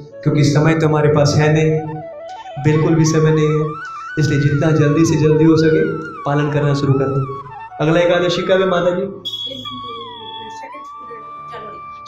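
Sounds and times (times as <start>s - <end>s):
lecturer speaking into microphone: 0.0s - 1.9s, 2.6s - 9.2s
thin whistling tone: 9.2s - 12.0s.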